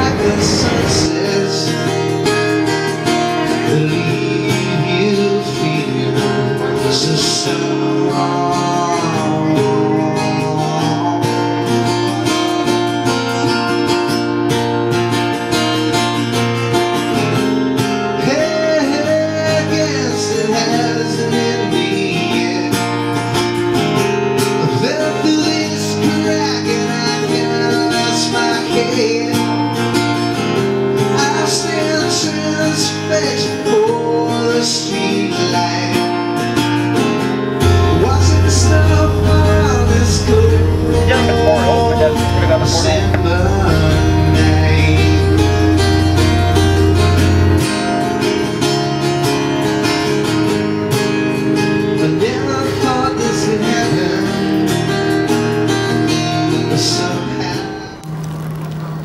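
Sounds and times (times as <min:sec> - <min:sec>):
person singing: 0:00.0 - 0:12.1, 0:37.8 - 0:49.0
acoustic guitar strumming: 0:00.0 - 0:59.0.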